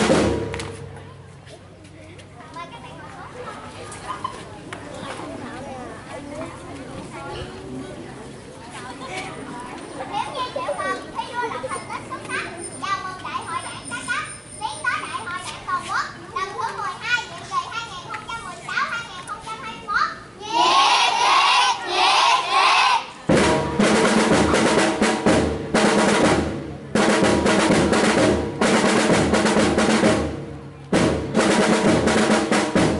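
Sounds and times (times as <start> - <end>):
snare drum roll: 0.0 - 1.0, 23.3 - 32.9
burst of children's voices: 0.7 - 25.2
children talking and calling out: 0.7 - 25.2.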